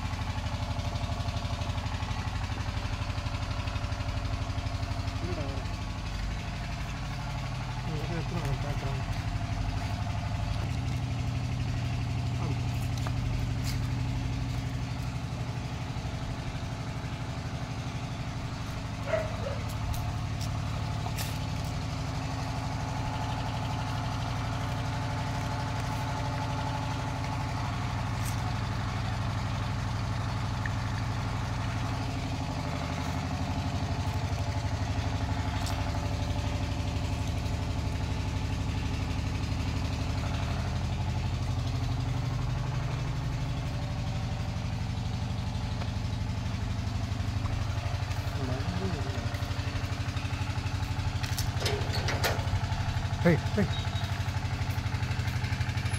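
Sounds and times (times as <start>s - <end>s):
engine idling: 0.0s - 55.9s.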